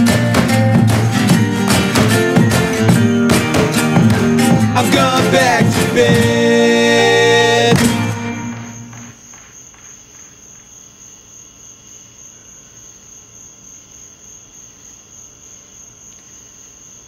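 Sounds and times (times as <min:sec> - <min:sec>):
song: 0:00.0 - 0:09.2.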